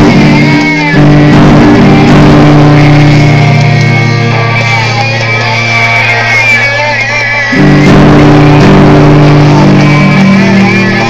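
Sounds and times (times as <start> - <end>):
guitar chord ringing: 0.0 - 11.0.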